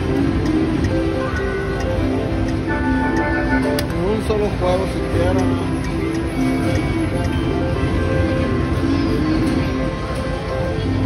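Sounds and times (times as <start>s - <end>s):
slot machine electronic music: 0.0s - 11.0s.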